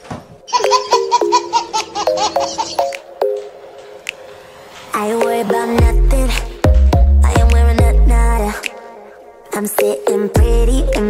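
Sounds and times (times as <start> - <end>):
rapid high-pitched giggling: 0.5 - 3.0.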